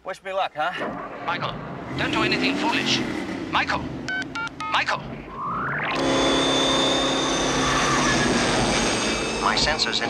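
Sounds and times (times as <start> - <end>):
tyre and road noise: 0.9 - 10.0
high engine whine: 1.0 - 10.0
car engine accelerating hard: 1.1 - 10.0.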